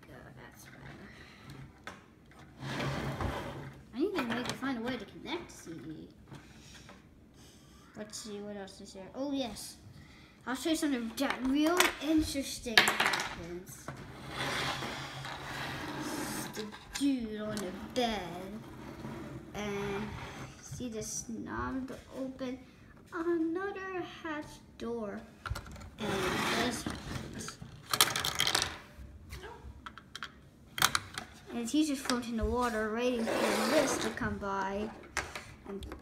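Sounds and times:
plastic scraping on wooden table: 13.9 - 17.0, 18.6 - 20.7, 26.0 - 28.8, 33.1 - 36.0.

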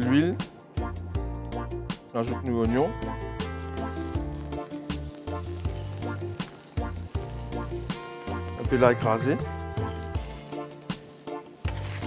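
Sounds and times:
onions sizzling in frying pan: 3.6 - 12.0.

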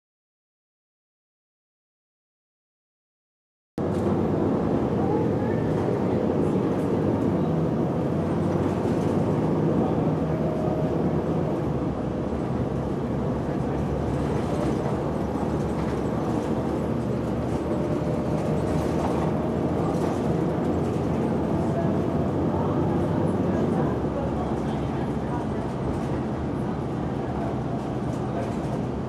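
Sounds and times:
bus engine and road rumble: 3.8 - 29.0.

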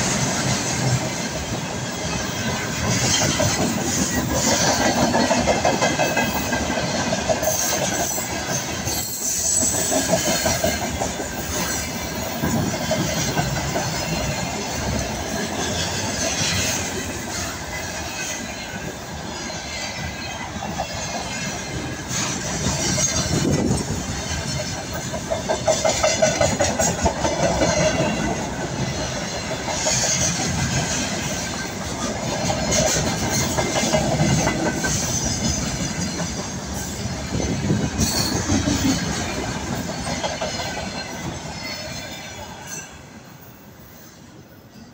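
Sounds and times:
freight train wheels rumbling: 0.0 - 44.9.

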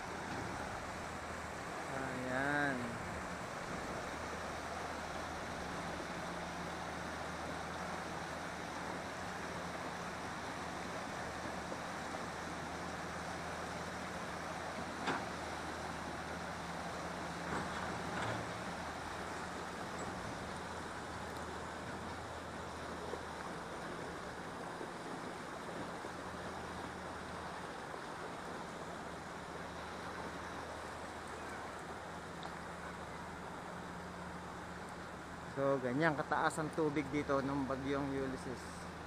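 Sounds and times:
river rushing over rapids: 0.0 - 39.0.

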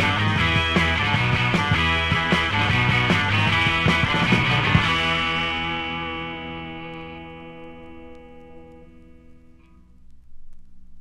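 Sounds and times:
drum hits: 0.0 - 6.1
ringing guitar chord: 0.0 - 9.9.

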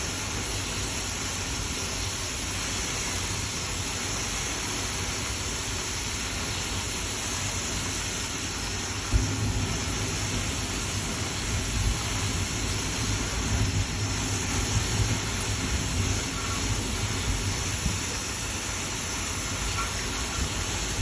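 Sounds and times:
fire hissing rush: 0.0 - 21.0
low whoomp of flames flaring: 9.0 - 21.0.

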